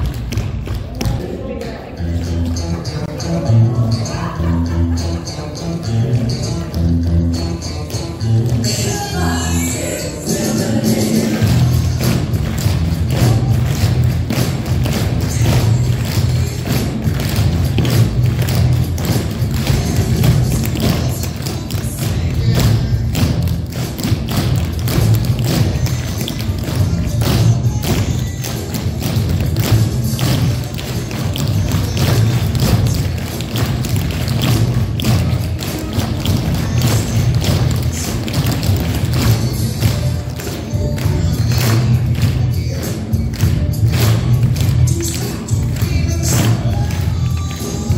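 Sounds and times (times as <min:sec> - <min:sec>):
recorded music with bass: 0:00.0 - 0:47.9.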